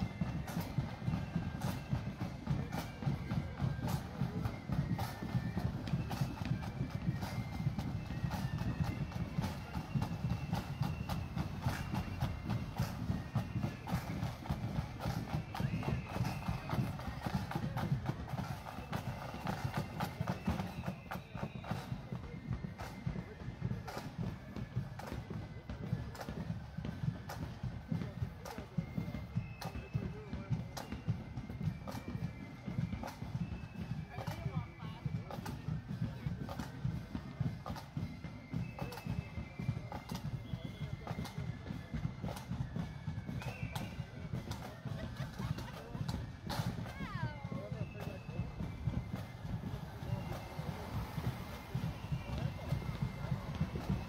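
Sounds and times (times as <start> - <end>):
faint flute notes: 0.0 - 54.0
marching drums: 0.0 - 54.0
onlookers chatting: 0.0 - 54.0.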